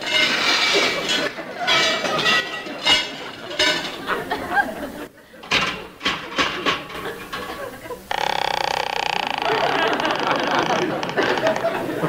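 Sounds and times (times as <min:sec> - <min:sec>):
faint knocks and clanks: 0:05.4 - 0:08.0.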